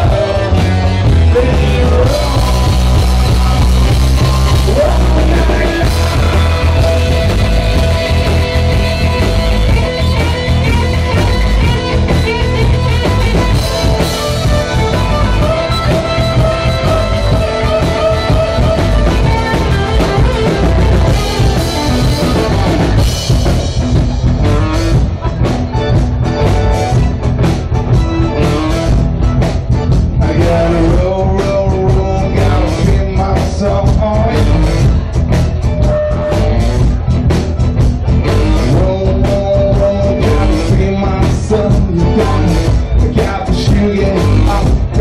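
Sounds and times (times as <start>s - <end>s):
drum kit: 0.0s - 45.0s
electric guitar: 0.0s - 45.0s
live rock band playing: 0.0s - 45.0s.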